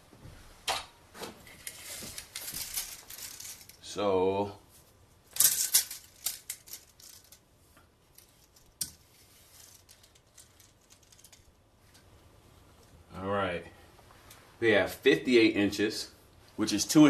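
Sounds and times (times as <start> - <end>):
tape measure rattling: 1.4 - 3.8, 5.3 - 7.4, 8.1 - 11.6.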